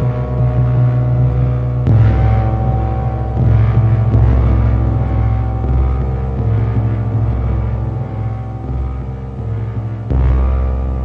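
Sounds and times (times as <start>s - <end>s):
deep synth drone: 0.0s - 11.0s.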